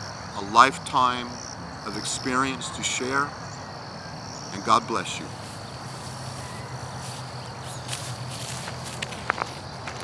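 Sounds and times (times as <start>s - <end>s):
high insect drone: 0.0s - 10.0s
footsteps through tall grass: 5.3s - 10.0s.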